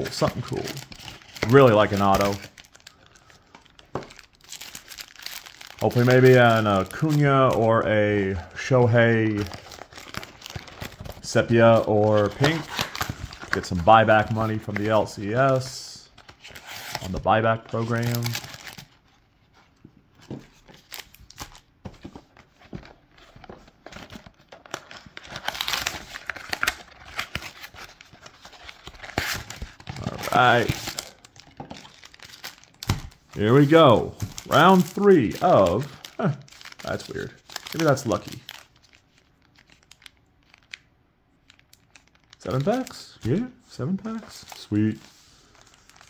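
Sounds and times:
card packs crinkling: 0.0s - 46.0s.

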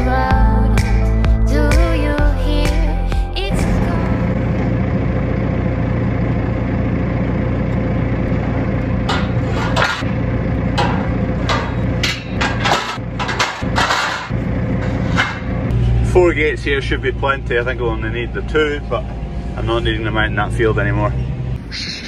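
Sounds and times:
engine running with hum: 0.0s - 22.0s
metal gates clanking and rattling: 8.6s - 15.7s.

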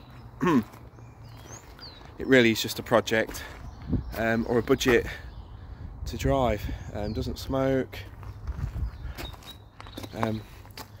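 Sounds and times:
footsteps on gravel: 0.0s - 5.2s, 7.9s - 11.0s.

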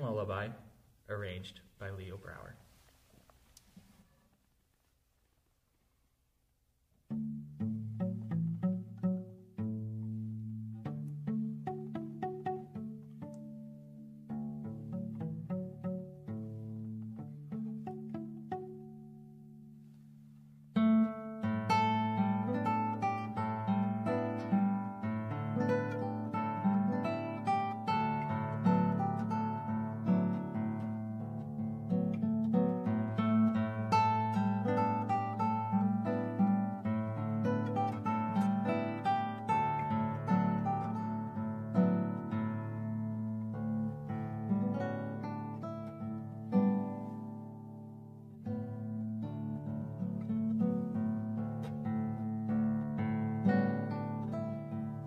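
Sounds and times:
classical guitar playing: 6.6s - 55.0s.

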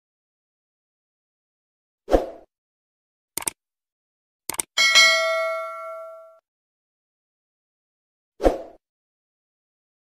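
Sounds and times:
notification bell chime: 4.8s - 6.4s.

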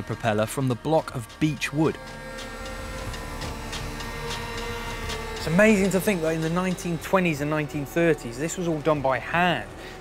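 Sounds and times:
router machine hum: 1.6s - 9.0s.

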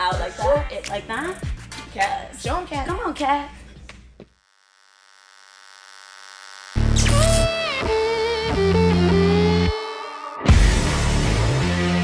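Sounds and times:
music: 0.0s - 4.2s, 6.8s - 12.0s
electrical hum buzz: 3.7s - 9.4s
deep bass hit: 10.5s - 12.0s.

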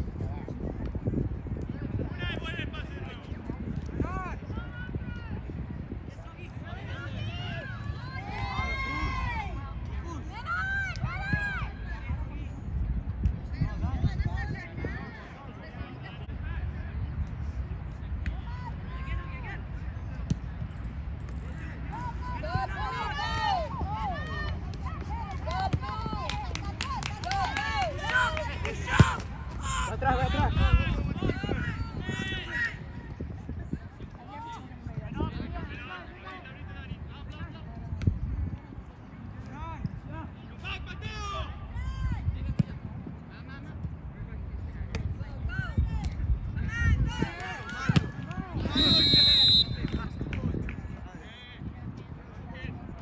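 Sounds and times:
wind rumble on microphone: 0.0s - 53.0s
players shouting: 6.7s - 9.6s, 21.9s - 32.8s.

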